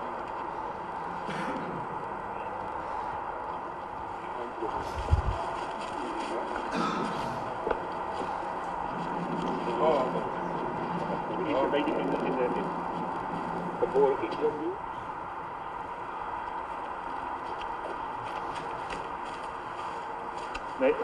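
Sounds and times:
indistinct voices: 0.0s - 16.4s
steady hum: 0.0s - 21.0s.

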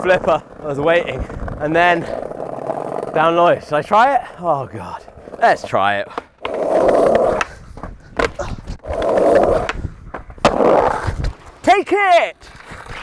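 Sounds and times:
skateboarder falling: 0.0s - 3.3s, 6.1s - 11.7s
skateboard wheels rolling on brick: 0.0s - 13.0s
skateboard clacks: 6.1s - 11.8s.

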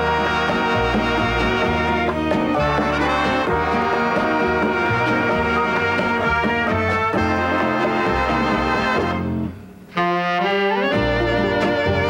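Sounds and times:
dance band playing latin music: 0.0s - 9.6s, 10.8s - 12.0s.

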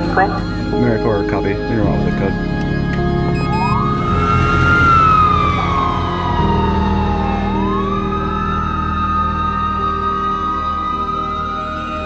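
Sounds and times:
low background music: 0.0s - 12.0s
ambulance siren wailing: 1.8s - 12.0s.

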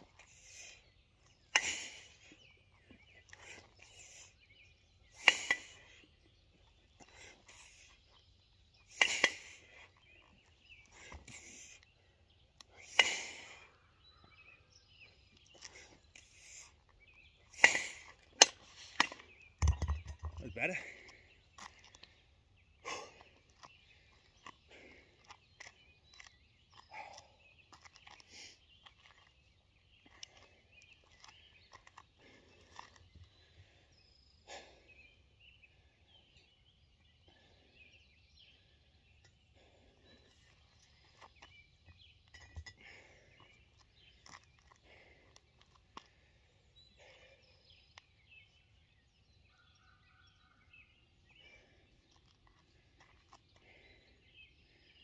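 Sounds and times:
faint bird chirps: 0.0s - 55.0s.

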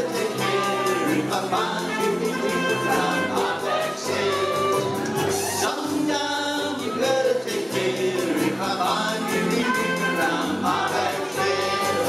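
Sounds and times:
bass guitar: 0.0s - 12.0s
strummed ukuleles: 0.0s - 12.0s
voices singing together: 0.0s - 12.0s.

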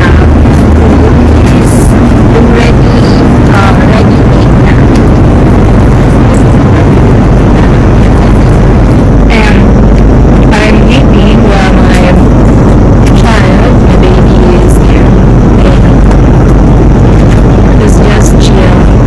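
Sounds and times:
faint voices: 0.0s - 12.4s, 13.0s - 16.2s, 17.1s - 19.0s
jet airliner cabin roar: 0.0s - 19.0s.

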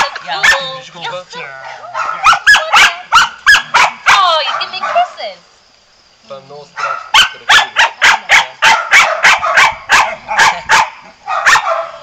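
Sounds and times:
dog barking rapidly: 0.0s - 0.8s, 1.6s - 5.2s, 6.8s - 12.0s.

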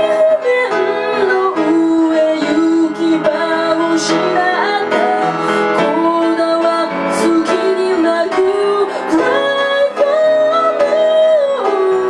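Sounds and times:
upright piano accompaniment: 0.0s - 12.0s
woman singing: 0.0s - 12.0s.

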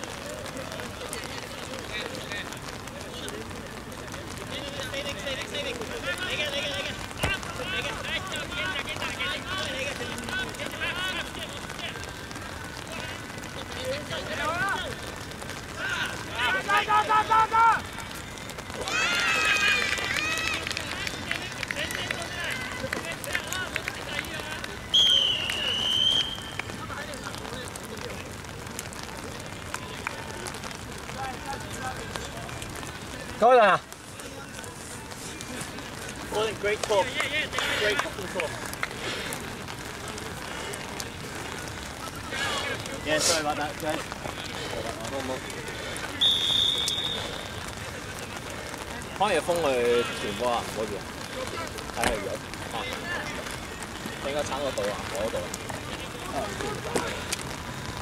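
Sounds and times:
players shouting: 4.0s - 27.9s
referee's whistle: 24.9s - 26.6s, 46.2s - 47.5s.

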